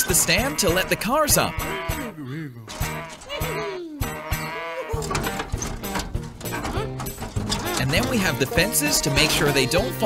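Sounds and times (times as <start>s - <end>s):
cartoon animal cry: 0.2s - 5.1s.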